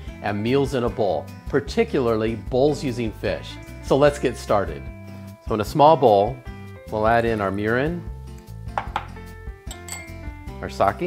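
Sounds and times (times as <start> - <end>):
soft background music: 0.0 - 11.0
glass bowl clinking on ceramic: 9.7 - 10.2.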